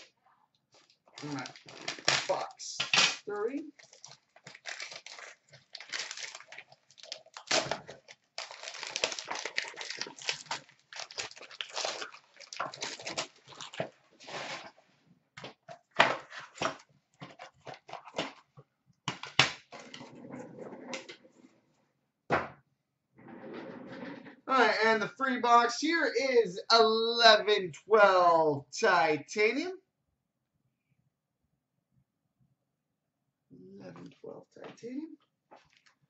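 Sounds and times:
foil wrapping crinkling and tearing: 0.8s - 14.8s.

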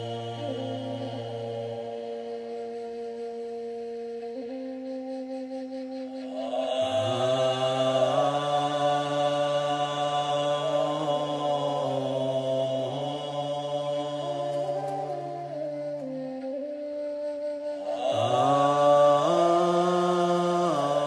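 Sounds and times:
deeper voice chanting: 0.0s - 3.6s, 6.2s - 15.9s, 17.8s - 21.0s
mantra chanting: 0.0s - 3.8s, 6.1s - 16.2s, 17.7s - 21.0s.

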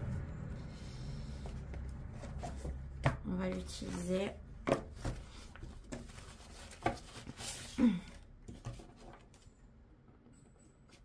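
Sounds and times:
rustling of card deck and box: 1.2s - 9.5s.

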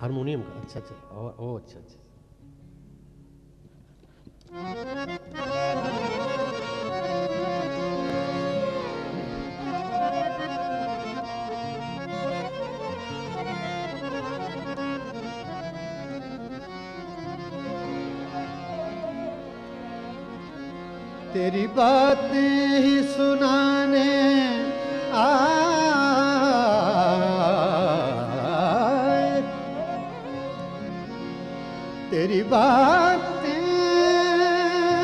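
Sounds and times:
harmonium melody: 0.0s - 1.8s, 4.4s - 35.0s.

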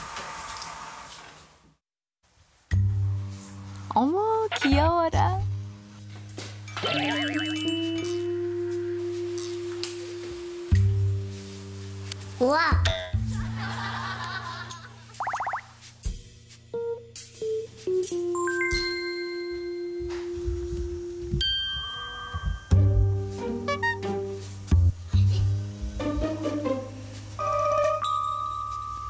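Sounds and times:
wavering electronic tone: 15.2s - 15.7s
bell-like chime notes: 18.4s - 20.3s, 21.4s - 22.8s, 27.5s - 29.0s.

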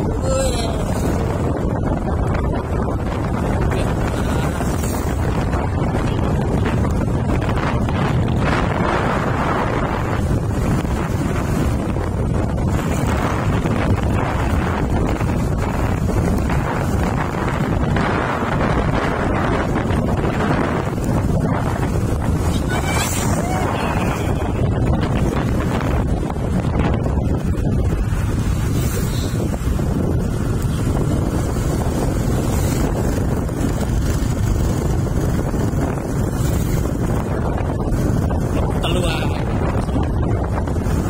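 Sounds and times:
engine and road noise: 0.0s - 41.0s
wind rush on microphone: 0.0s - 41.0s.

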